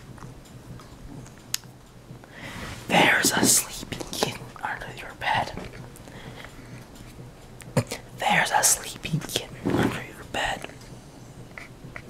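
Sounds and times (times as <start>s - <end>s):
person whispering: 2.8s - 5.8s, 7.8s - 10.8s.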